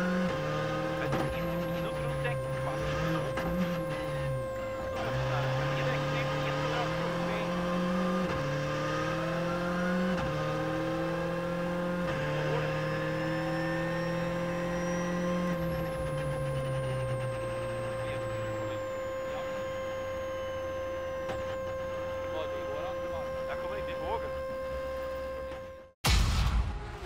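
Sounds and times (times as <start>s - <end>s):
high whine: 0.0s - 9.6s
rally car engine accelerating: 0.0s - 26.0s.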